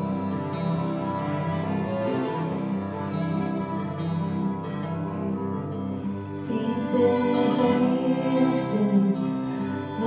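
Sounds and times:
acoustic guitar: 0.0s - 10.0s
violins bowing long notes: 0.0s - 10.0s.

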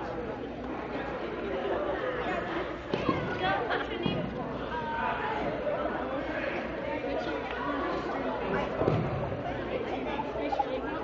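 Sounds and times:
students chattering in a gymnasium: 0.0s - 11.0s.

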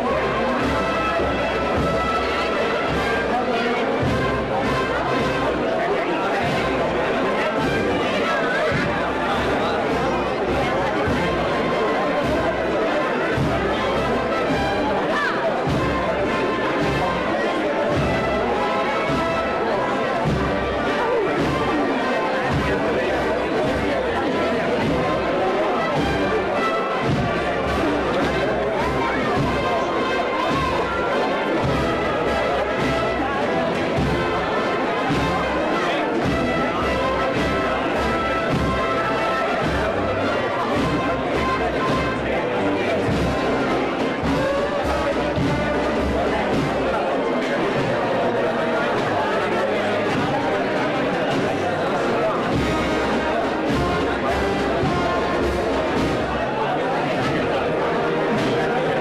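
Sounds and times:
crowd chatter: 0.0s - 59.0s
wind band playing a march: 0.0s - 59.0s.

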